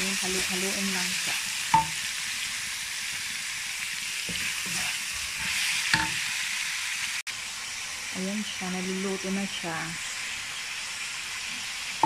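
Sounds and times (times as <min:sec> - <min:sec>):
food sizzling in a wok: 0:00.0 - 0:12.0
spatula scraping pan: 0:04.2 - 0:06.2.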